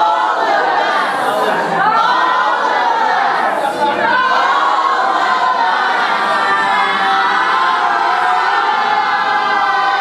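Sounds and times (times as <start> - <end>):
group singing held notes: 0.0 - 10.0.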